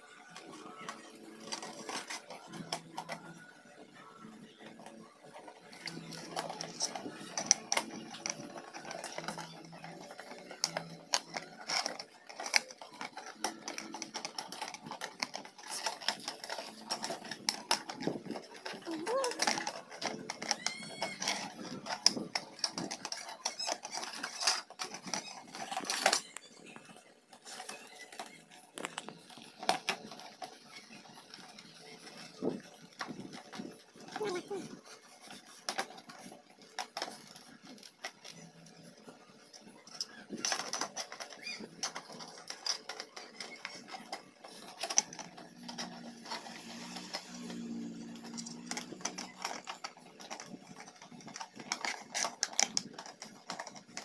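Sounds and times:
plastic film crinkling: 4.5 - 54.0.

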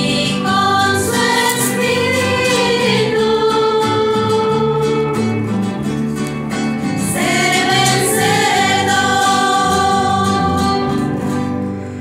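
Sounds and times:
women singing together: 0.0 - 5.2, 7.0 - 11.1
acoustic guitar: 0.0 - 12.0.

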